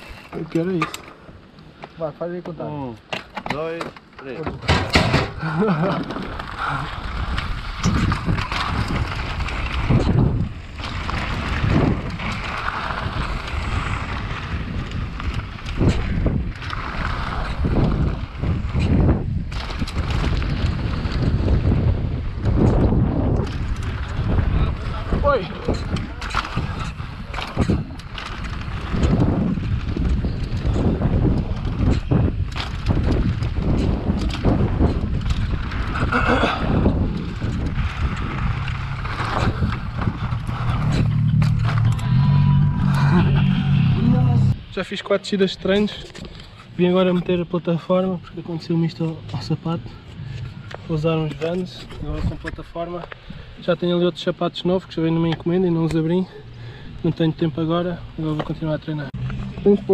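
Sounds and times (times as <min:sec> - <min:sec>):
bike knocking and rattling: 0:00.0 - 0:59.9
tyres rumbling on loose dirt: 0:00.0 - 0:59.9
wind rushing over microphone: 0:04.5 - 0:59.9.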